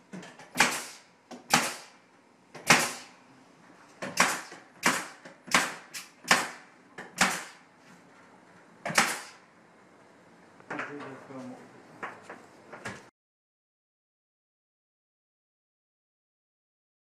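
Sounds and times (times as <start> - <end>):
pneumatic nailer firing: 0.3 - 2.0, 2.6 - 3.2, 4.0 - 7.6, 8.8 - 9.4.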